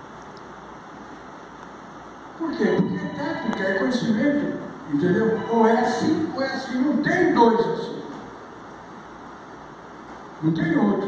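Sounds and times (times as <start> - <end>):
low hiss of room tone: 0.0 - 11.0.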